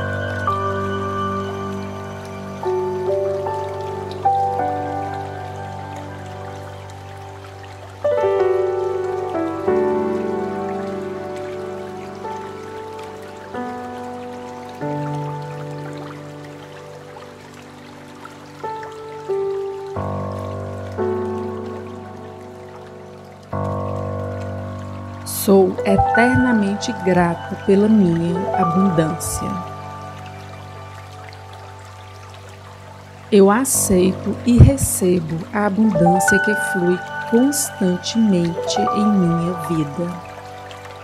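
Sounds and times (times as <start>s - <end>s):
slow new-age music: 0.0s - 41.0s.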